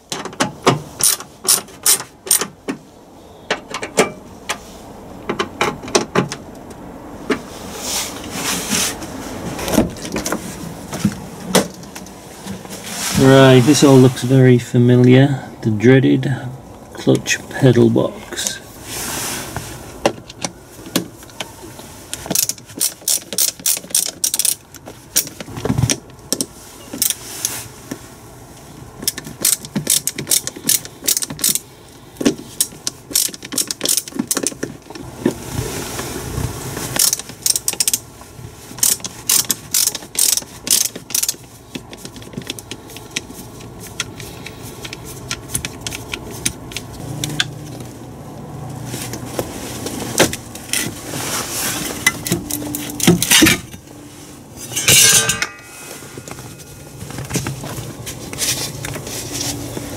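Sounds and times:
ratcheting screwdriver clicking: 38.8 - 43.3.

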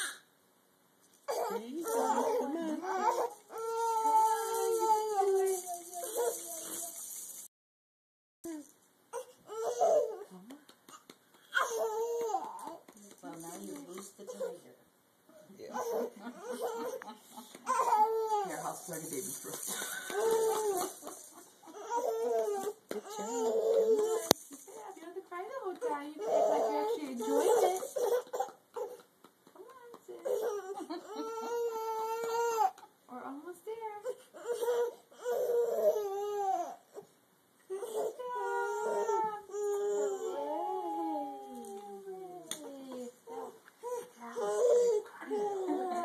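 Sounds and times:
baby crying: 1.3 - 7.0, 9.1 - 10.2, 10.9 - 12.8, 15.7 - 18.5, 20.0 - 24.4, 29.8 - 32.9, 34.2 - 37.0, 37.7 - 46.0.

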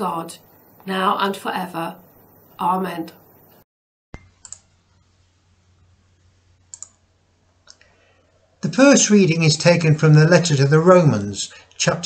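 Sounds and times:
small clicks: 4.2 - 4.7, 6.7 - 7.0.

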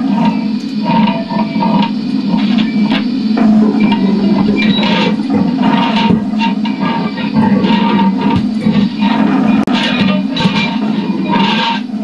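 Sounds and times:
low drone: 0.0 - 12.0
scraping and clicking noises: 0.0 - 12.0.

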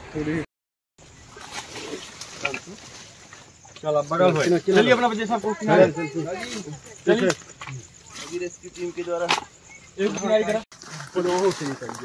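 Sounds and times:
men talking: 3.7 - 12.0.

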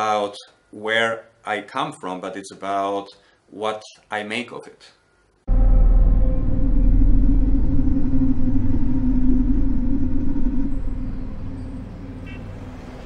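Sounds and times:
steady droning hum: 4.5 - 13.0
loud low rumble: 5.5 - 13.0.

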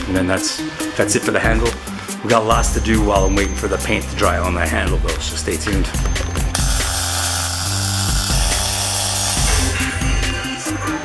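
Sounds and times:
background music with bass: 0.0 - 11.0
welder arc crackling: 6.5 - 9.9.

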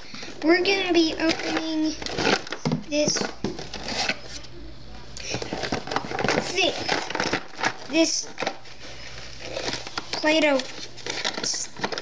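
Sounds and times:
cardboard box crinkling and rustling: 9.3 - 12.0.

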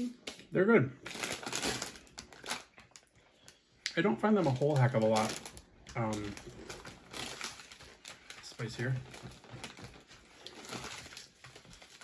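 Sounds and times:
foil bag crinkling: 1.0 - 3.2, 4.3 - 12.0.

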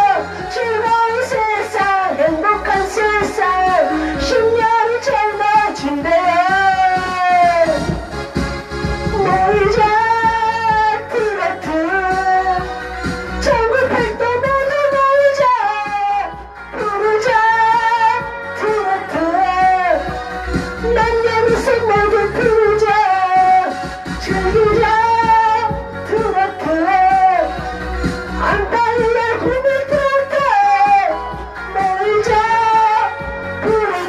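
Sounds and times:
woman singing into microphone: 0.0 - 8.1, 9.0 - 34.0
karaoke backing track: 0.0 - 34.0.

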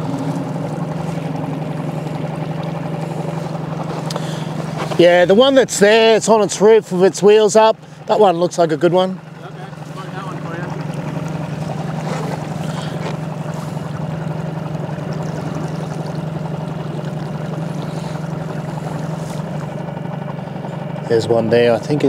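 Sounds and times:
boat motor humming: 0.0 - 22.0.

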